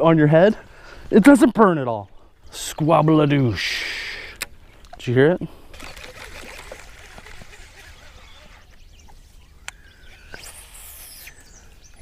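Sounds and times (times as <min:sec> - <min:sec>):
faint bird calls: 0:05.7 - 0:12.0.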